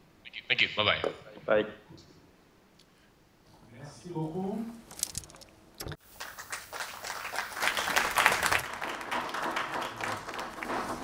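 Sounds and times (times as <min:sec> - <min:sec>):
audience applause: 0:06.1 - 0:11.0.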